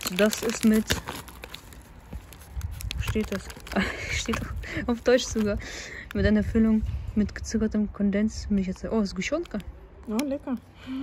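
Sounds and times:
plastic wrapper crinkling: 0.0s - 6.2s
low background rumble: 0.0s - 11.0s.

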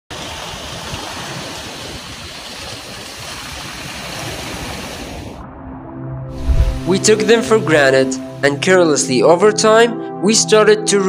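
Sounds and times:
rushing ocean water: 0.1s - 9.3s.

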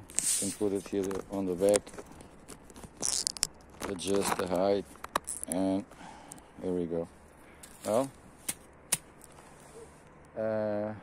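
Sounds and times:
phone handling rustle: 0.0s - 6.5s
man talking: 0.4s - 1.9s, 3.8s - 5.9s, 6.6s - 7.1s, 7.8s - 8.2s, 10.4s - 11.0s.

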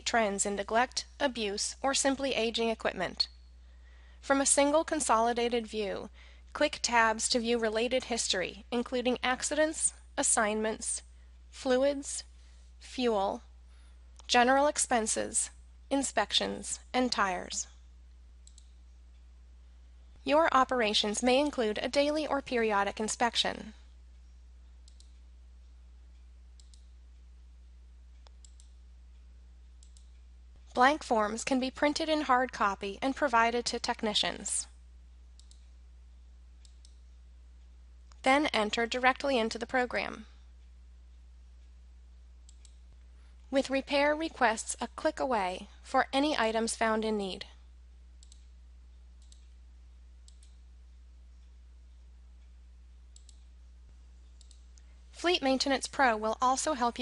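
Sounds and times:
low electrical hum: 0.0s - 57.0s
faint computer mouse clicks: 18.4s - 18.8s, 24.8s - 25.2s, 26.6s - 26.9s, 28.2s - 28.8s, 29.8s - 30.2s, 35.4s - 35.7s, 48.2s - 48.5s, 49.2s - 49.6s, 50.2s - 50.6s, 53.1s - 53.5s, 54.2s - 54.9s.

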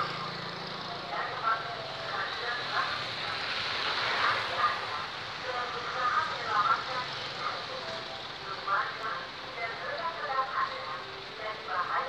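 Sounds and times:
motorcycles idling: 0.0s - 3.5s
truck engine: 0.0s - 12.0s.

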